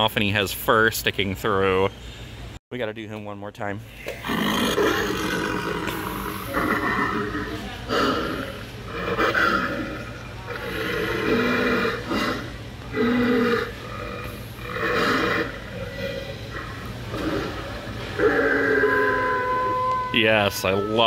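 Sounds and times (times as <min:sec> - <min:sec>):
recorded growls and snarls: 0:04.2 - 0:19.3.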